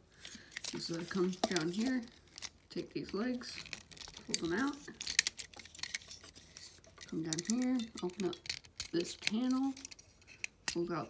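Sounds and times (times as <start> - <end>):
plastic toy parts clicking: 3.3 - 10.9.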